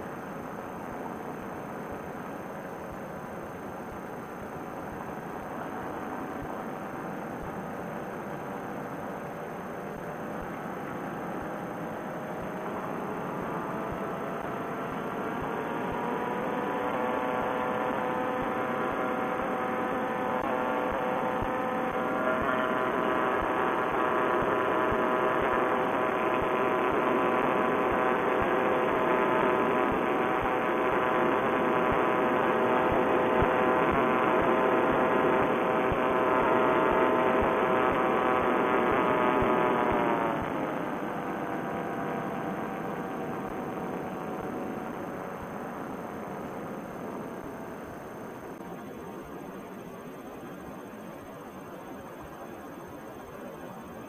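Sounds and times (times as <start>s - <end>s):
paramotor engine and propeller: 0.0s - 54.0s.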